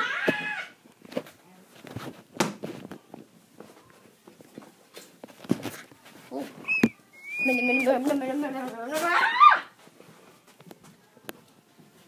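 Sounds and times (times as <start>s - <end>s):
footsteps indoors: 0.2s - 12.0s.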